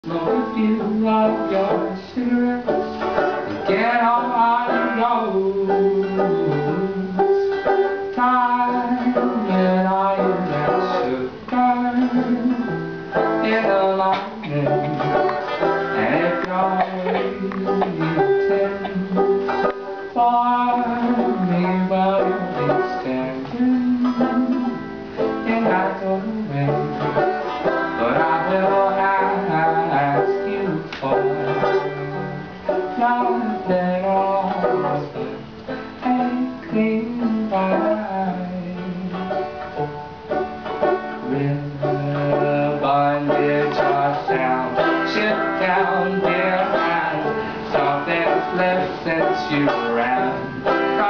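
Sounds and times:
banjo plucked chords: 0:00.0 - 0:51.0.

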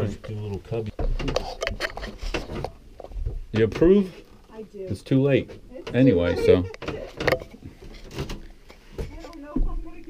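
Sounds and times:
footsteps knocking on steps: 0:08.9 - 0:10.0.

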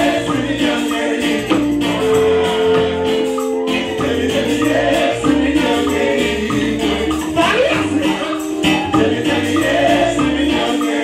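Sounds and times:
band with drums and bass: 0:00.0 - 0:05.9, 0:06.5 - 0:10.6
voices singing gospel: 0:00.0 - 0:11.0.

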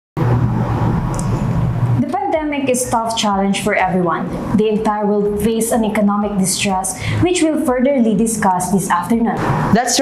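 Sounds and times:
loud low humming rumble: 0:00.2 - 0:10.0.

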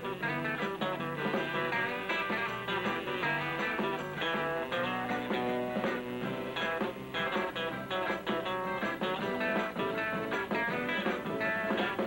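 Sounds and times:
guitar-led record on a jukebox: 0:00.0 - 0:12.0.

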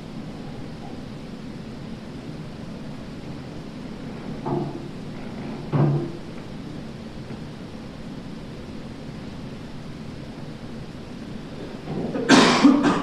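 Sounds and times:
low background hiss: 0:00.0 - 0:13.0
person coughing: 0:12.1 - 0:13.0.

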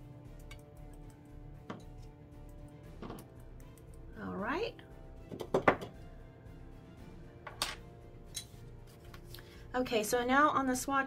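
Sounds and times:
soft background music: 0:00.0 - 0:11.0
pencils knocking on a tabletop: 0:03.0 - 0:03.2, 0:05.3 - 0:06.0.

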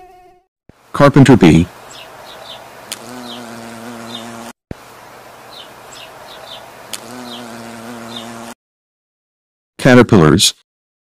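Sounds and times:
small birds chirping: 0:01.5 - 0:08.6
bee buzzing: 0:01.6 - 0:08.6.

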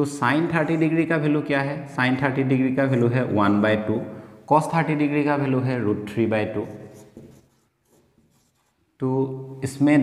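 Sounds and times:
marker writing on whiteboard: 0:06.4 - 0:09.0.

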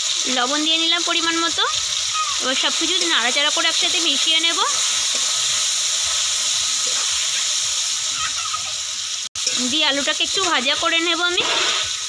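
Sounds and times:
potatoes sizzling in oil: 0:00.0 - 0:12.0
spatula stirring: 0:02.4 - 0:08.0.

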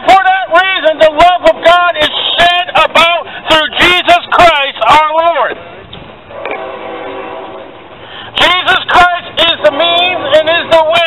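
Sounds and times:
horn steady held tone: 0:06.3 - 0:07.8.

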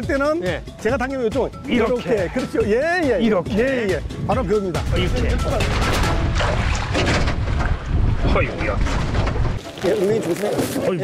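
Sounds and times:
wind rumbling on microphone: 0:04.1 - 0:09.6.

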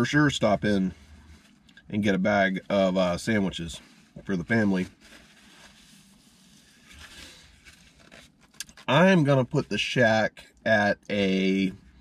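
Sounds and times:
paper napkin rustling: 0:03.8 - 0:09.0.

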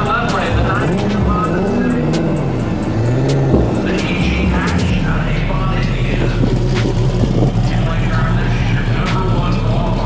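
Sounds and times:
crowd voices: 0:00.0 - 0:10.0
drag car engine rumbling: 0:00.0 - 0:10.0.

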